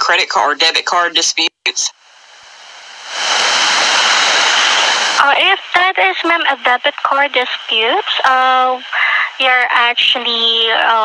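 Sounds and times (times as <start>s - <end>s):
phone line static hiss: 0.0s - 11.0s.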